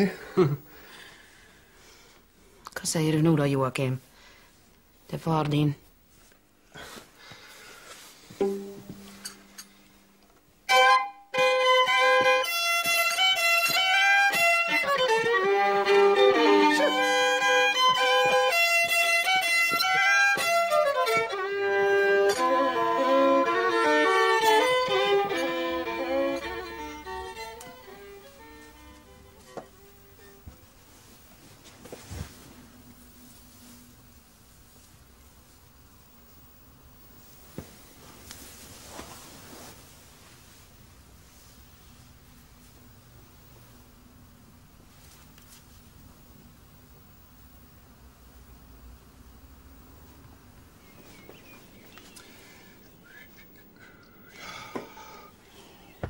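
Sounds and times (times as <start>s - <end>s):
solo violin tune: 10.7s - 30.4s.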